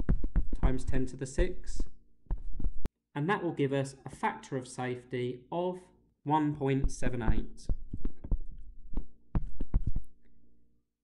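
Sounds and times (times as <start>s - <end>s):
stylus tapping on tablet screen: 0.0s - 0.7s, 2.3s - 2.8s, 7.2s - 10.2s.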